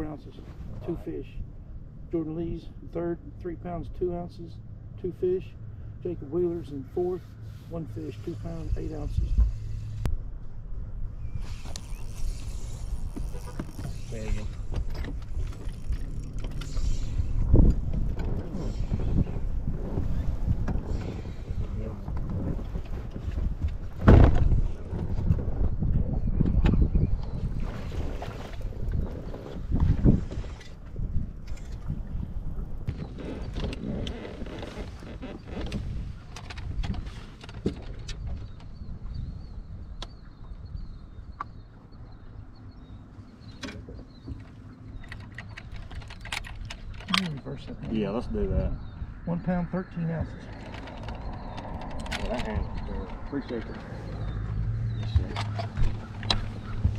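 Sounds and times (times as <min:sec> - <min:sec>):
wind rumble on microphone: 0:03.6 - 0:56.9
knocks and thumps on boat deck: 0:22.0 - 0:25.5, 0:55.0 - 0:56.9.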